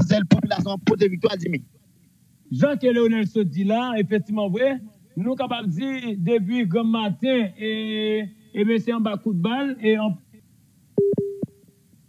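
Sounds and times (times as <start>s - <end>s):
low electronic beep: 11.0s - 11.6s.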